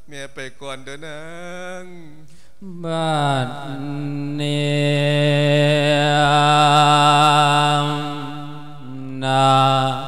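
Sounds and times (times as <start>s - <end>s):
man chanting sermon: 0.0s - 10.0s.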